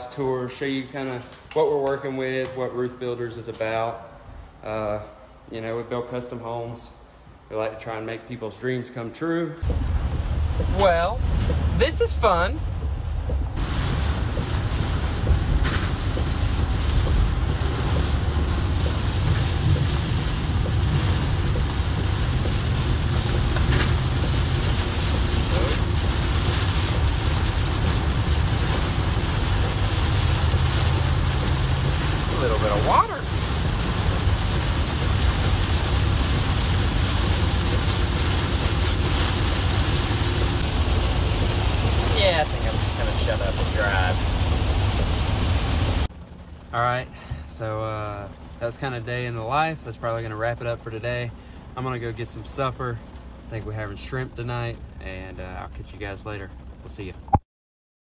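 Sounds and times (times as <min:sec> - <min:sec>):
rain hissing on van: 0:09.6 - 0:57.2
road and engine rumble: 0:09.6 - 0:57.4.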